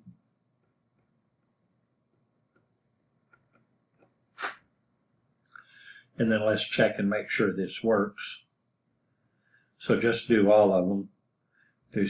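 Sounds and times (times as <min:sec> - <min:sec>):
soft hiss: 0:00.0 - 0:12.0
sharp burst of breath: 0:04.4 - 0:04.6, 0:05.6 - 0:06.2
person speaking: 0:05.5 - 0:08.4, 0:09.8 - 0:11.0.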